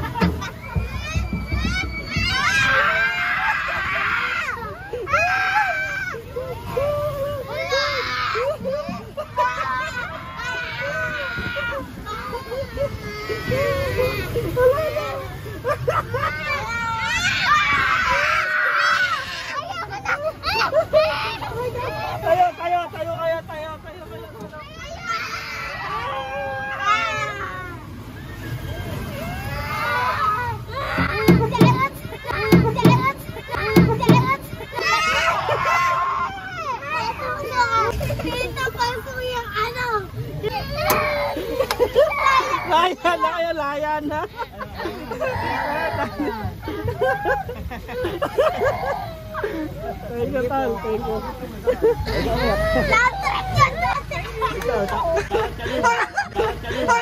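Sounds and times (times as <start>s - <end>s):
children squealing and shouting: 0.0s - 22.9s, 24.3s - 57.0s.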